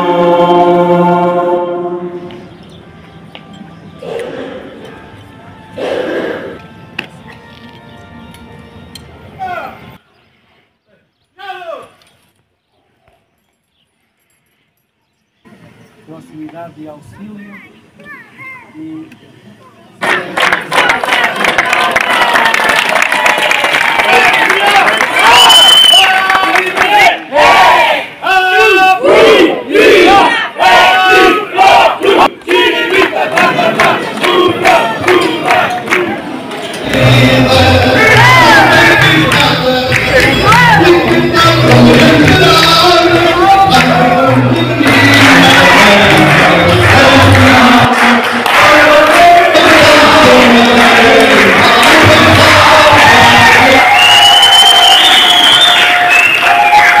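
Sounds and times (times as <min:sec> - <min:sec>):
music: 0:00.0 - 0:10.0, 0:36.8 - 0:53.6
group shouting rhythmic cheer: 0:24.0 - 0:36.3, 0:36.9 - 0:54.4.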